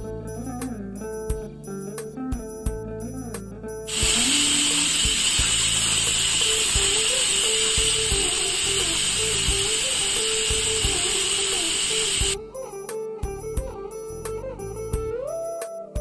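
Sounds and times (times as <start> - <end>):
pressure cooker steam hiss: 3.9 - 12.4.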